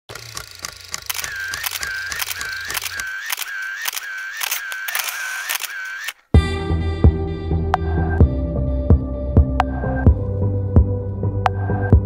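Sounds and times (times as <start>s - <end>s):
camera motor-wind whir: 0.1s - 6.2s
camera shutter clicking: 0.2s - 6.3s.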